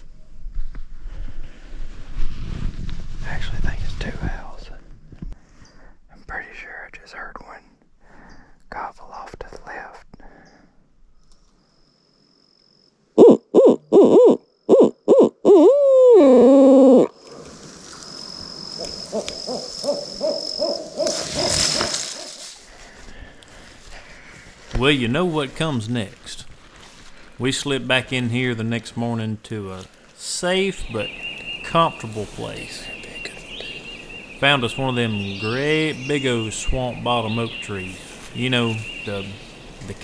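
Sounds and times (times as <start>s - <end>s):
rustling: 0.0s - 4.2s, 17.2s - 30.4s
owl hooting: 13.2s - 17.2s, 18.2s - 22.4s.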